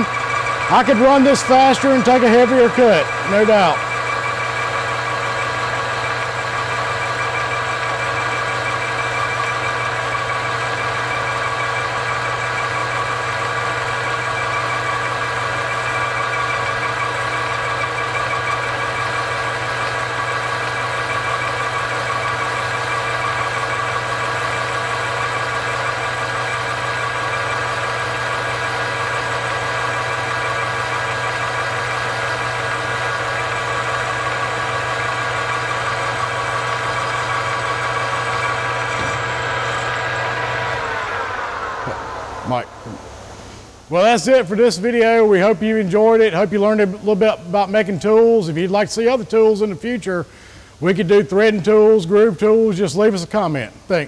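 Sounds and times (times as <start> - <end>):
lathe humming: 0.0 - 49.6
spindle drive whine: 0.0 - 54.0.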